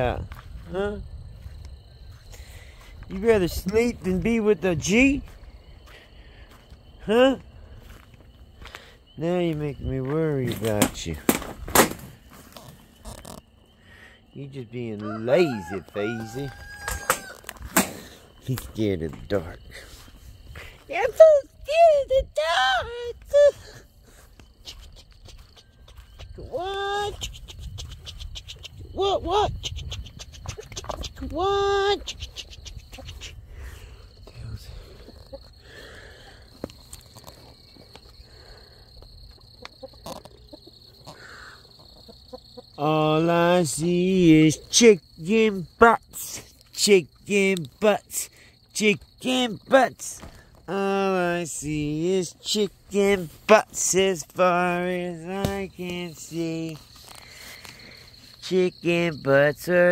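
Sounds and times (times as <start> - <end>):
chickens clucking softly: 39.1 - 42.8.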